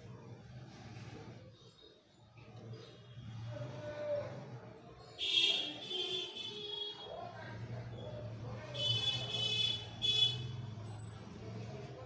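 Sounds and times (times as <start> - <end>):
vehicle horn honking: 5.2 - 7.0, 8.8 - 10.6.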